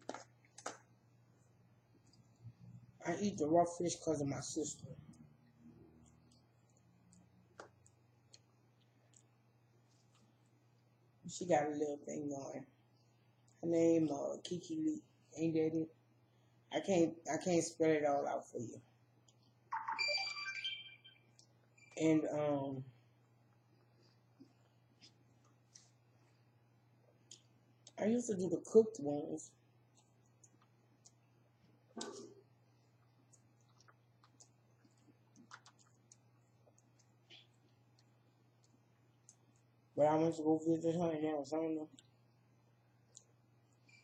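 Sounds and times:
low electrical hum: 0:00.0 - 0:44.0.

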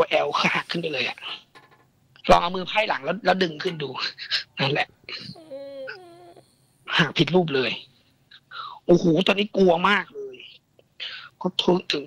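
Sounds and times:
person whimpering: 0:05.1 - 0:06.9.

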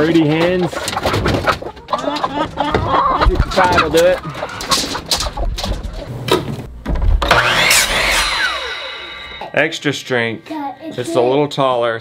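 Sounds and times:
knocks and clatter: 0:02.7 - 0:07.4
miter saw cutting wood: 0:07.2 - 0:09.6.

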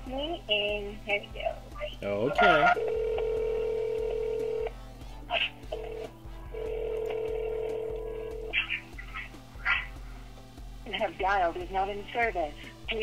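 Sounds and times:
telephone dial tone: 0:02.7 - 0:04.7, 0:05.8 - 0:08.5.

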